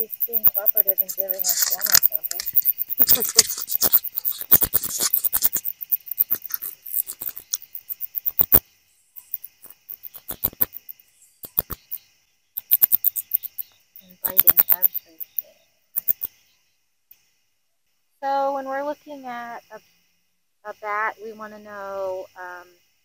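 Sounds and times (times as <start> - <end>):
bat clicking and squeaking: 0.0 - 8.6, 9.2 - 12.0, 12.6 - 16.4
insects trilling: 0.0 - 23.0.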